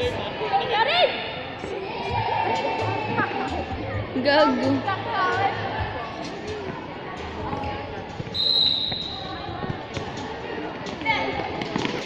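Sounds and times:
voices shouting: 0:00.0 - 0:06.2
referee whistle blast: 0:08.3 - 0:09.4.

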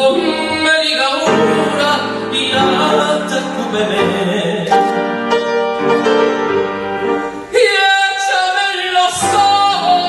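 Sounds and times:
person singing: 0:00.0 - 0:05.2, 0:07.3 - 0:10.0
piano chords: 0:00.0 - 0:10.0.

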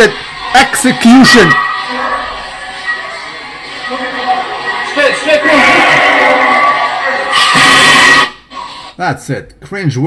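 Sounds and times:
loud music: 0:00.0 - 0:08.8.

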